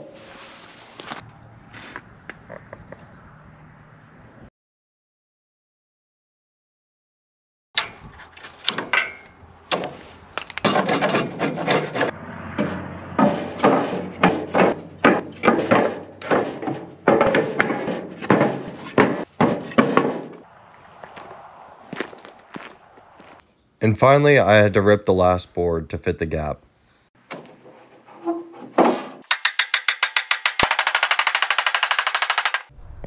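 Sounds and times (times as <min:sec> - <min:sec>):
wooden boards knocking and scraping: 0:07.8 - 0:20.4, 0:27.2 - 0:32.6.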